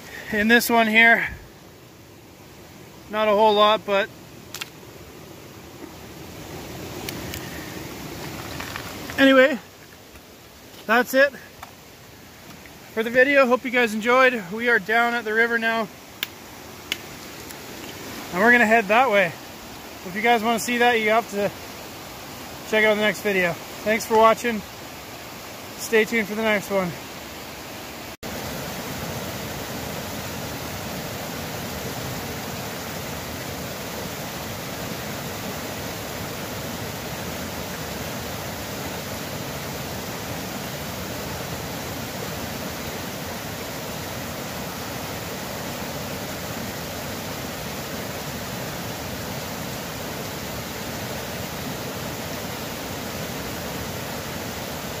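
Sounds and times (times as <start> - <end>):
water rushing over rocks: 0.0 - 55.0.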